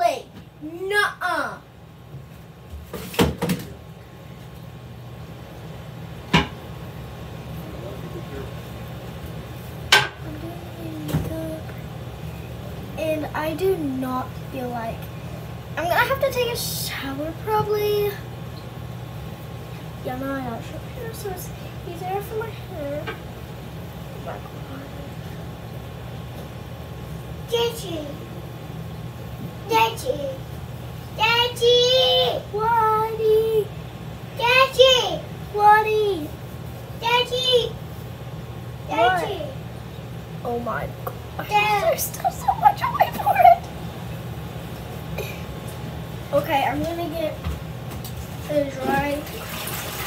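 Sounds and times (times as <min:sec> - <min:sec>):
steady low hum: 0:00.0 - 0:49.5.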